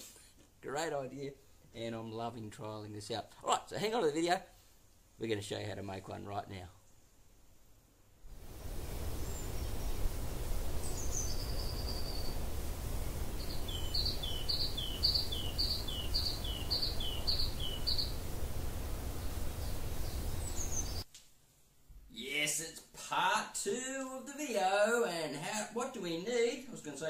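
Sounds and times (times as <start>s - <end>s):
low background rumble: 8.3s - 21.0s
bird singing: 9.1s - 10.1s, 10.8s - 12.5s, 13.3s - 18.3s, 19.1s - 21.0s.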